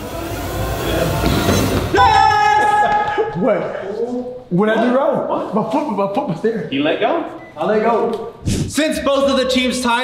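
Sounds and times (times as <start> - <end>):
rushing noise riser: 0.0 - 2.0.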